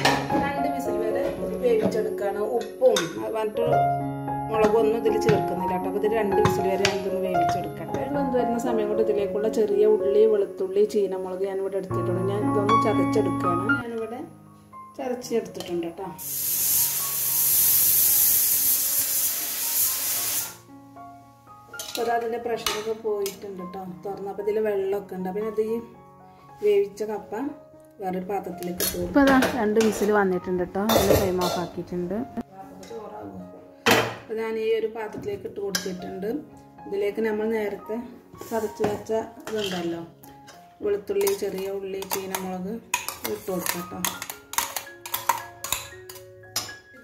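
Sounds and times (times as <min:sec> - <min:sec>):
faint background music: 0:00.0 - 0:47.0
pressure cooker venting steam: 0:16.2 - 0:20.6
metal spoon clinking on pans: 0:21.8 - 0:23.4, 0:30.9 - 0:31.7, 0:39.4 - 0:47.0.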